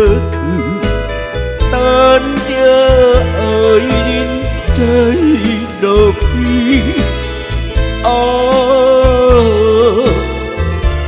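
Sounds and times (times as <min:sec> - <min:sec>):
man singing into a microphone: 0:00.0 - 0:10.6
karaoke backing track with bass beat: 0:00.0 - 0:11.0.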